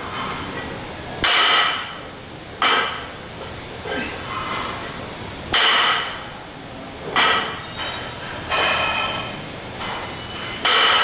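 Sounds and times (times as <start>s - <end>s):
barbell clanking and ringing: 7.2s - 11.0s.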